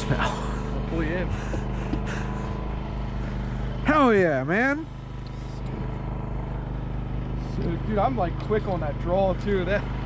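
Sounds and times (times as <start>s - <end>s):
small boat engine humming: 0.0s - 10.0s.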